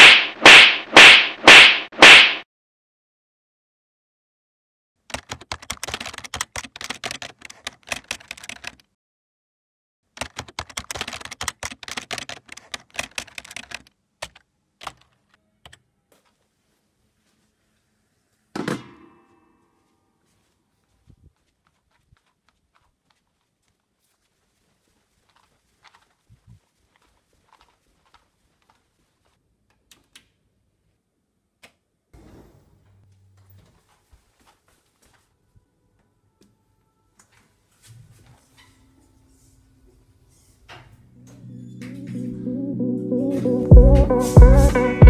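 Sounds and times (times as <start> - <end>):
fast keyboard typing: 5.1 - 8.9, 10.2 - 15.3
faint footsteps on carpet: 20.2 - 29.4.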